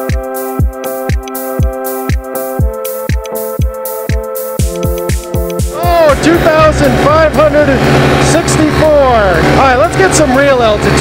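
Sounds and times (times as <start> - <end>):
paramotor engine droning: 4.6 - 11.0
man talking: 5.7 - 11.0.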